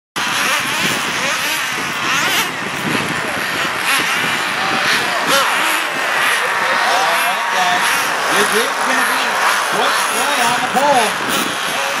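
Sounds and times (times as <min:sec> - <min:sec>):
model car engines whining: 0:00.2 - 0:12.0.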